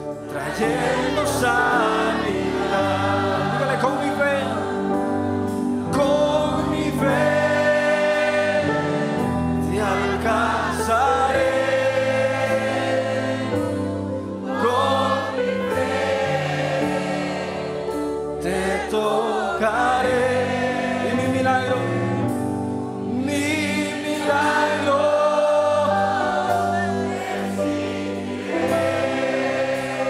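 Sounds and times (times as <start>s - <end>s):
congregation singing: 0.0s - 30.0s
keyboard holding chords: 0.0s - 30.0s.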